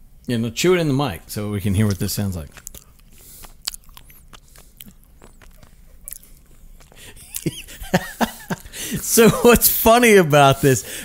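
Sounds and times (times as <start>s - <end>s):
honeycomb chewing crackles: 1.6s - 7.7s.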